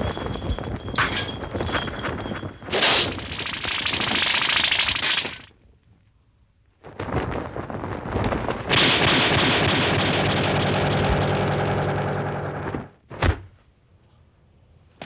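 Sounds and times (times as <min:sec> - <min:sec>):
spinning weapon rushing whir: 0:02.7 - 0:05.5
low hum: 0:08.7 - 0:13.0.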